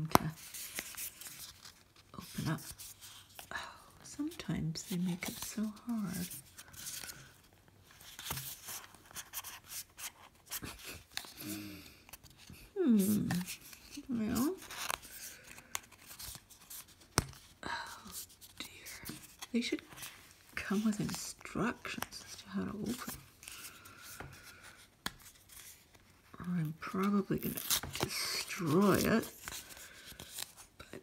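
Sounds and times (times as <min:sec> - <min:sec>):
ticks and scratches of handling: 0:00.0 - 0:30.8.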